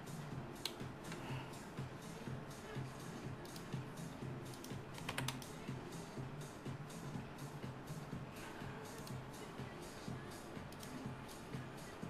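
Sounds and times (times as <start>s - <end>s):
faint background music: 0.0s - 12.0s
keyboard keystrokes: 4.5s - 5.5s.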